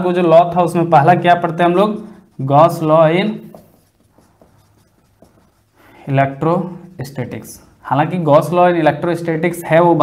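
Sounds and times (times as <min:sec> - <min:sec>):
marker pen scratching on whiteboard: 0:00.4 - 0:07.8.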